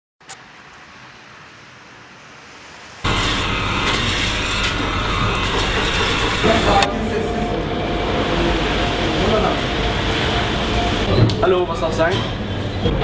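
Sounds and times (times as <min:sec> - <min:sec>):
indoor shop background noise: 0:00.3 - 0:13.0.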